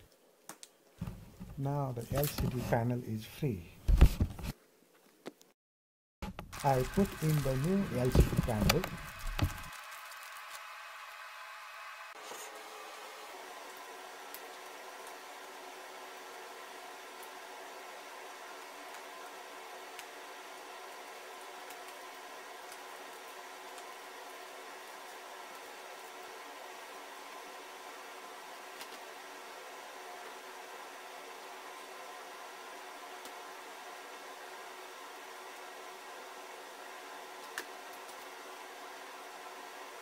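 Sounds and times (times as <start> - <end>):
faint hiss with light hum: 0.0 - 5.5, 6.5 - 40.0.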